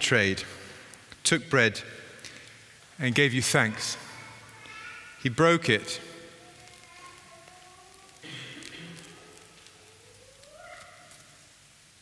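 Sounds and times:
faint high voice: 3.8 - 5.2, 6.4 - 11.4
bread crackling as torn: 6.4 - 11.6.

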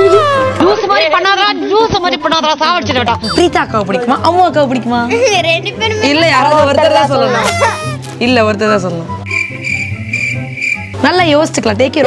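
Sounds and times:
girl talking: 5.1 - 6.2
cricket chirp trill: 9.3 - 11.0.

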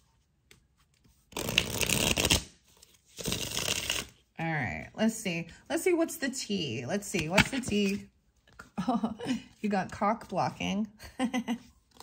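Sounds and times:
cards being shuffled: 0.4 - 4.2, 7.0 - 8.6.

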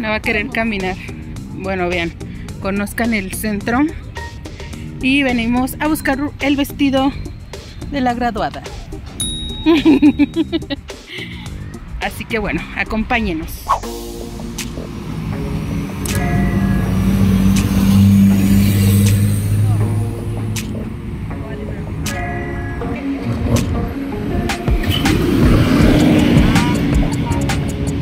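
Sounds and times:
vehicle engines passing: 0.0 - 9.2, 9.8 - 28.0
background music: 0.0 - 28.0.

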